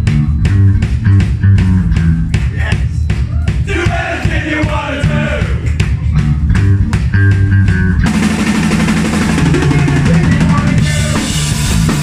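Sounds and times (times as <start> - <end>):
drumming and cymbals: 0.0 - 12.0
punk rock band playing: 0.0 - 12.0.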